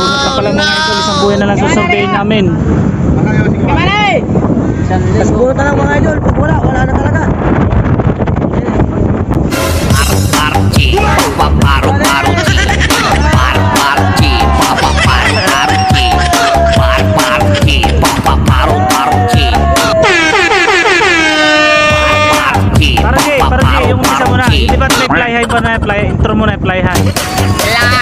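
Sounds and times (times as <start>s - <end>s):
boat engine rumble: 0.0s - 28.0s
wind on microphone: 0.0s - 28.0s
electronic music with beat: 9.7s - 21.1s, 21.7s - 25.1s, 26.9s - 28.0s.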